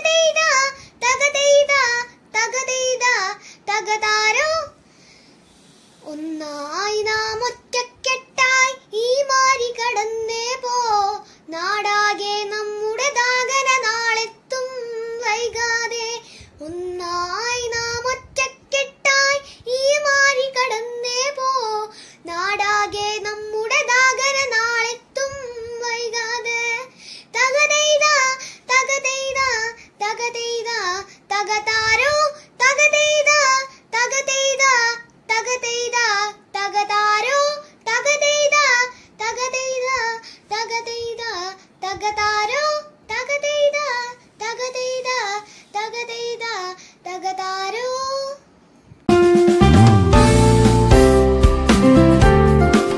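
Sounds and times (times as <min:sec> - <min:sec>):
girl singing unaccompanied: 0:00.0 - 0:48.6
breaths: 0:00.8 - 0:01.0, 0:03.4 - 0:03.7, 0:04.8 - 0:06.1, 0:11.2 - 0:11.5, 0:16.2 - 0:16.6, 0:19.4 - 0:19.7, 0:21.9 - 0:22.3, 0:26.9 - 0:27.4, 0:28.4 - 0:28.7, 0:29.8 - 0:30.0, 0:31.0 - 0:31.3, 0:32.4 - 0:32.6, 0:33.7 - 0:33.9, 0:38.9 - 0:39.2, 0:40.2 - 0:40.5, 0:41.6 - 0:41.8, 0:45.4 - 0:45.8, 0:46.8 - 0:47.1.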